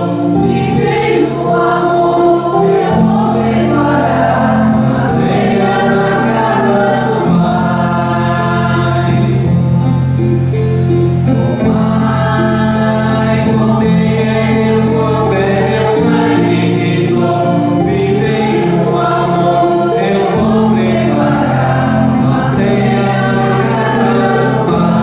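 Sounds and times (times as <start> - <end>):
choir singing a hymn: 0.0 - 25.0
sustained instrumental chords: 0.0 - 25.0.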